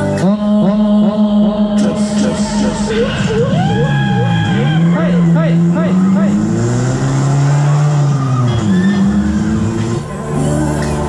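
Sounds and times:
sliding revving sound effects: 2.0s - 11.0s.

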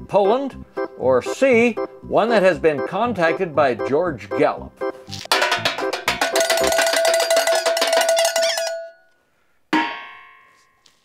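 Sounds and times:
metallic clanks clattering: 5.3s - 8.9s.

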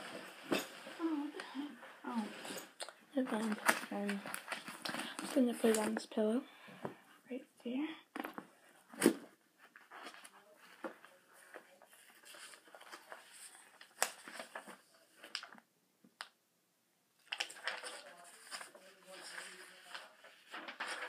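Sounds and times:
paper rustling: 0.0s - 6.1s, 8.2s - 15.6s, 17.2s - 21.0s.

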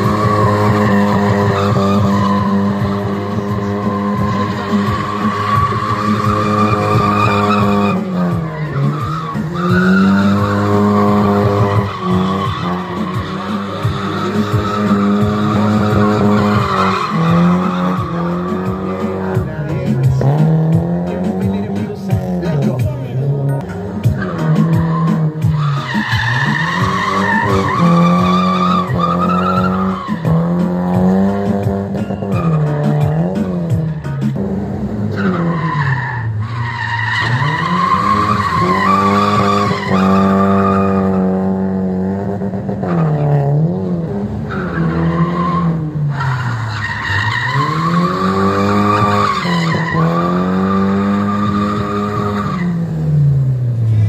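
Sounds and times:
tyres squealing: 0.0s - 41.6s, 44.4s - 52.9s
car engine revving high: 0.0s - 54.0s.

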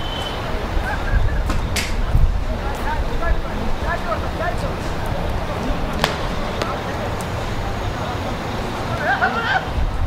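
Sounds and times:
football being kicked: 6.0s - 7.0s.

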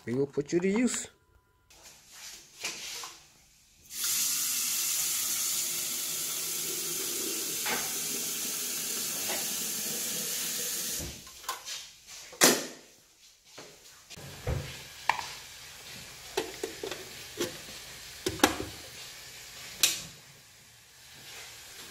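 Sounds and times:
tap water filling kettle: 3.9s - 11.3s, 14.2s - 19.1s.

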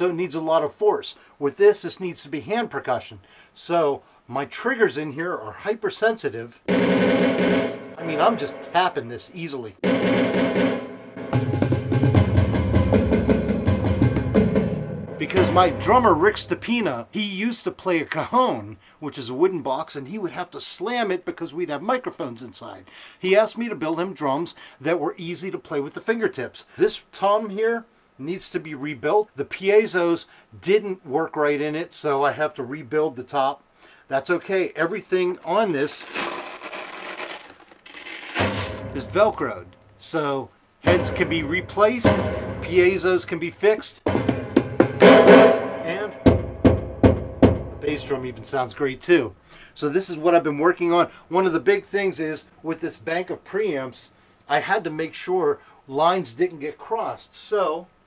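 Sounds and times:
electronic drum hits: 6.7s - 9.0s, 9.8s - 16.6s, 38.4s - 39.5s, 40.9s - 43.3s, 44.1s - 48.1s
deep low drum tone: 9.8s - 16.7s, 38.5s - 39.8s, 40.8s - 43.4s, 44.0s - 48.5s
velcro ripping: 35.4s - 39.0s
low ringing boom: 40.9s - 43.3s
sudden thud: 42.1s - 43.0s, 44.1s - 47.9s.

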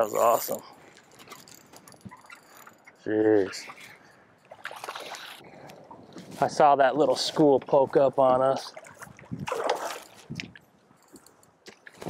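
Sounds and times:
fishing reel clicking: 0.0s - 3.9s
choppy water: 0.0s - 10.6s.

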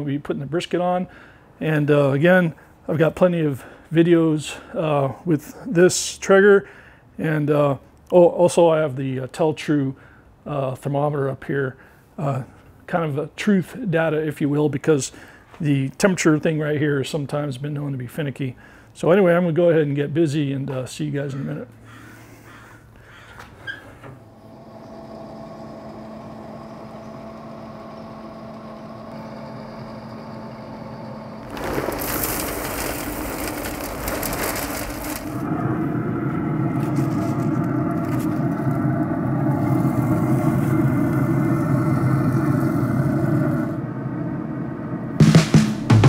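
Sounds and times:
wood pellets poured into hopper: 31.4s - 43.7s.

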